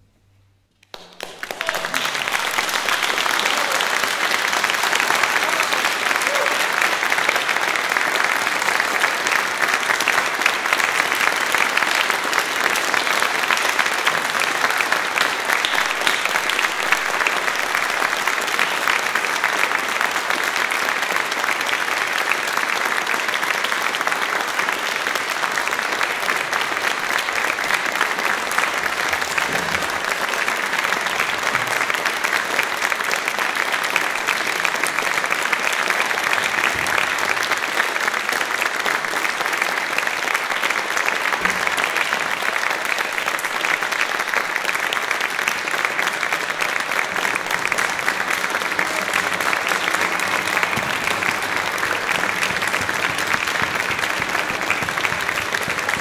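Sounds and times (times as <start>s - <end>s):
audience applauding: 0.8s - 56.0s.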